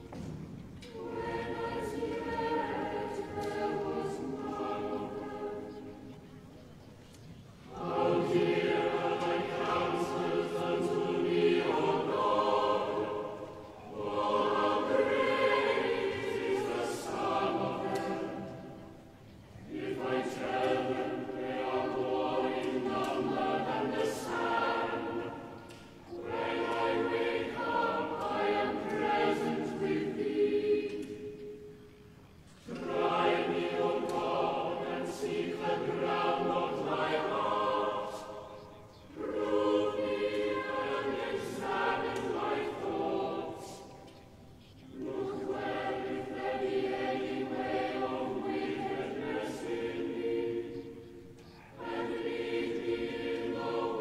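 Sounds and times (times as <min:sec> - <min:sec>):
choir singing: 0:00.0 - 0:06.8, 0:07.5 - 0:54.0.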